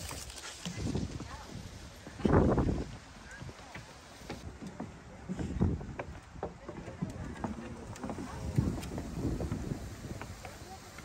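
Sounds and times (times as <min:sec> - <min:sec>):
footsteps on wooden boardwalk: 0:00.0 - 0:11.0.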